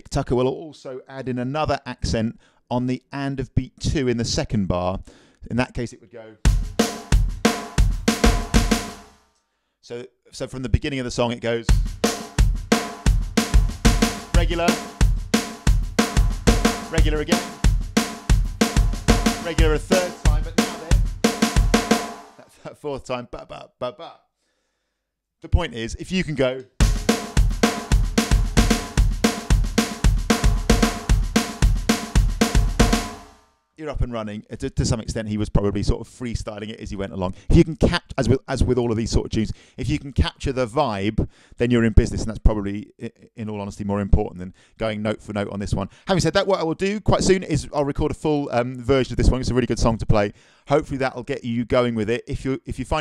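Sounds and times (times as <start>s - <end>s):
bass drum hits: 6.5s - 9.0s, 11.7s - 22.1s, 26.8s - 33.2s
electronic snare drum roll: 6.5s - 9.1s, 11.7s - 22.4s, 26.8s - 33.4s.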